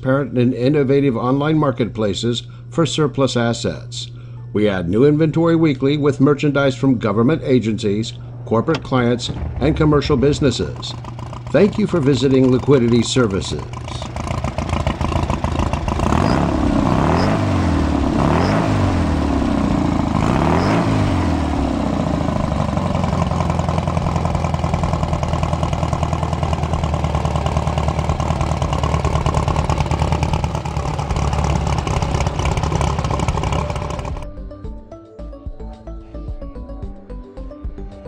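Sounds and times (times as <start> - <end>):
car engine revving and idling: 8.2 - 34.2.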